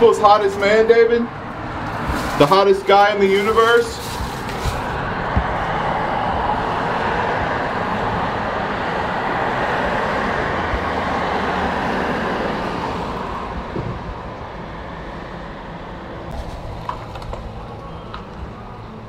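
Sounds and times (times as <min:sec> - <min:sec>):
passing vehicles rushing: 0:00.0 - 0:19.0.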